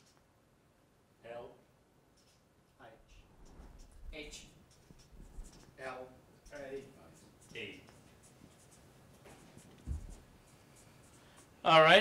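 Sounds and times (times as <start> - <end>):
marker scratching on paper: 4.7 - 5.8, 6.5 - 11.6
low thump: 9.9 - 10.2.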